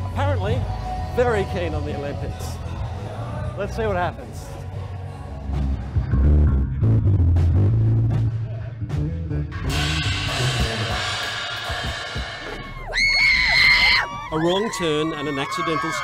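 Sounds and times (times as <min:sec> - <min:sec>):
loud bass-heavy band music: 0:00.0 - 0:14.4
crowd of fans screaming: 0:12.4 - 0:16.0
shrill high-pitched scream: 0:12.5 - 0:16.0.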